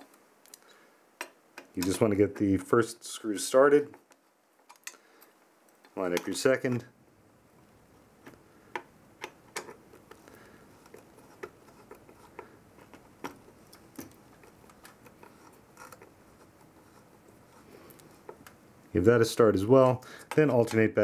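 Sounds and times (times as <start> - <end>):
small metal clicks and taps: 19.9 - 20.9.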